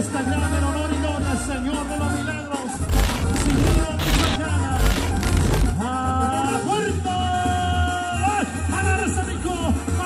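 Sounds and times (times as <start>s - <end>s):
banda music with brass and percussion: 0.0s - 10.0s.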